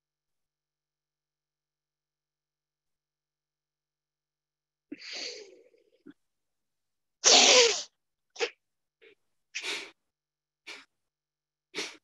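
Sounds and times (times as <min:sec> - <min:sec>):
forceful breaths: 0:11.7 - 0:12.0.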